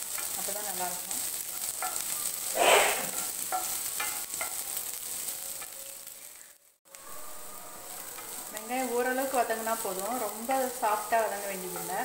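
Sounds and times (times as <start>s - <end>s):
onions sizzling in frying pan: 0.0s - 12.0s
spatula scraping pan: 1.5s - 4.6s.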